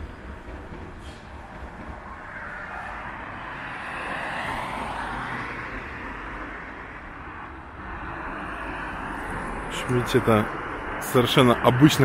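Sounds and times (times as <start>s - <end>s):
car passing by: 0.9s - 12.0s.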